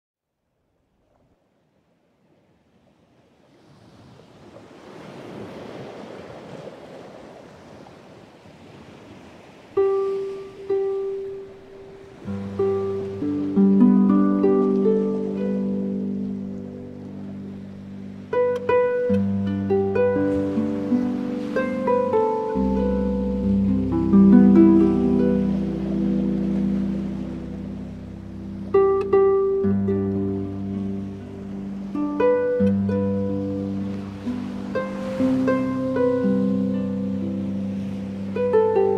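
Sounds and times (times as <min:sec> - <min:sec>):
sea waves washing in: 0:01.6 - 0:38.9
harp playing slow piece: 0:09.8 - 0:38.9.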